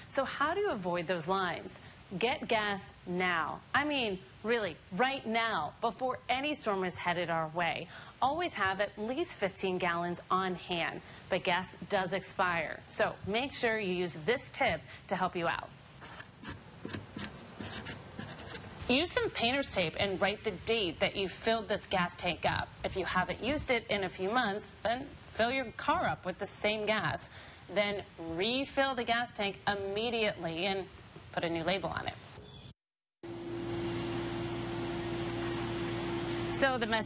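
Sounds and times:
background hiss: 0.0s - 32.7s
marker writing on tape: 16.0s - 18.7s
low hum: 33.2s - 37.0s.

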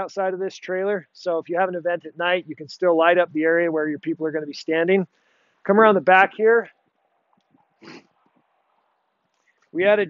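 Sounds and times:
soft breathy noise: 5.1s - 5.7s.

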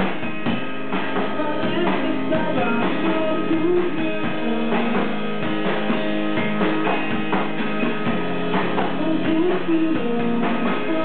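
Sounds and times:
drum kit: 0.0s - 11.0s
electric guitar: 0.0s - 11.0s.

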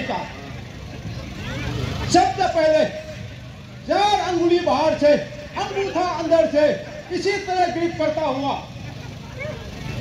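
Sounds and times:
faint crowd murmur: 0.0s - 10.0s.

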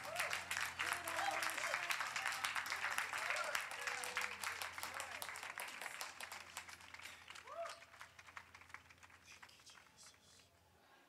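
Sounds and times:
scattered hand claps: 0.0s - 10.5s.

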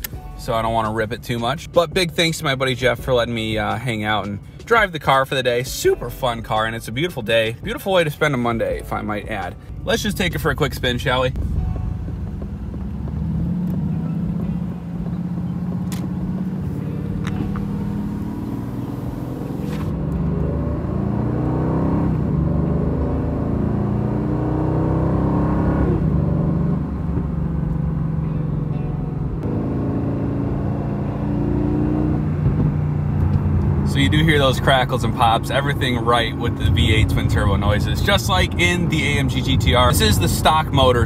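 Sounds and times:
car engine accelerating: 9.0s - 41.0s.

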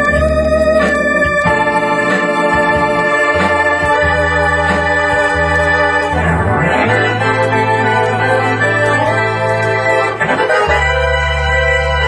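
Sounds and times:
organ playing sustained chords: 0.0s - 12.0s.

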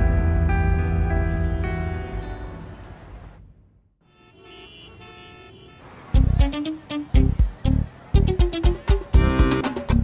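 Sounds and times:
road traffic: 0.0s - 10.0s
vehicle horns honking: 4.0s - 9.8s.

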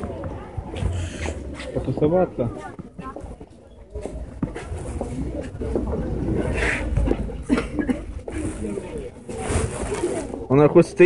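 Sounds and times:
indistinct voices of shoppers: 0.0s - 11.0s.

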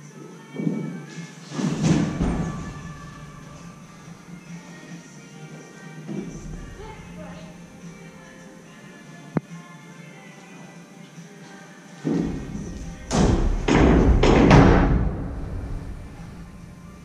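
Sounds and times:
faint music: 0.0s - 17.0s.

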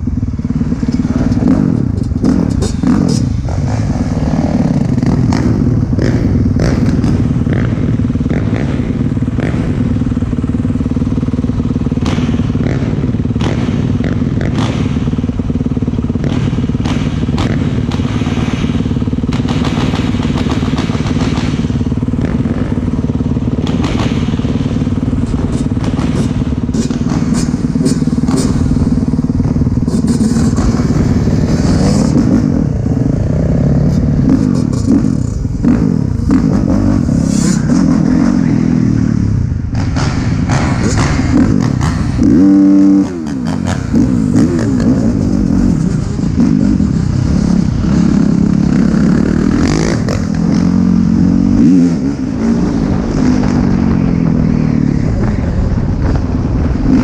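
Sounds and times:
dirt bike engine running: 0.0s - 57.0s.

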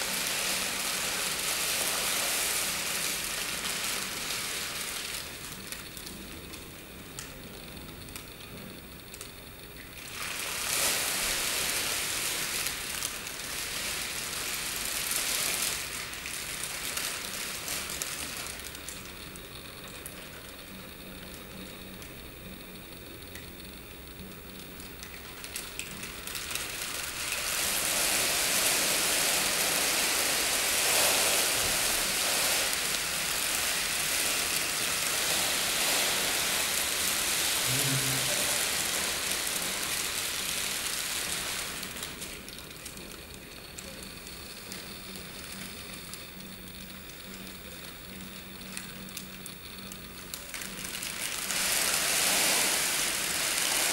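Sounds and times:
plastic sheeting crinkling: 0.0s - 5.2s, 10.2s - 18.7s, 26.2s - 43.0s, 50.3s - 53.9s.

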